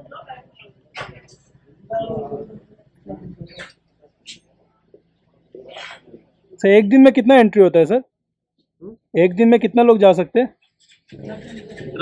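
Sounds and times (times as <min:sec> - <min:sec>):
quiet speech: 0:00.0 - 0:07.0, 0:11.1 - 0:12.0.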